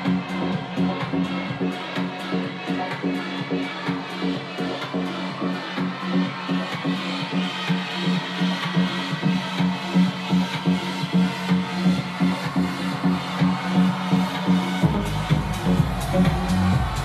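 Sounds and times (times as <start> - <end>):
loud electronic dance music: 0.0 - 17.0.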